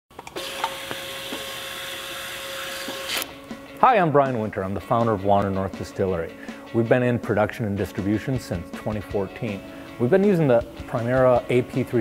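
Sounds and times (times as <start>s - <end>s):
label applicator motor hum: 0.2s - 3.4s.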